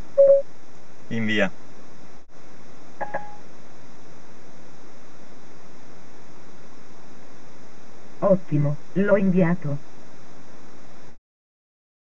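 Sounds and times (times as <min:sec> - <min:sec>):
call audio hiss: 0:00.1 - 0:11.2
short electronic beep: 0:00.2 - 0:00.4.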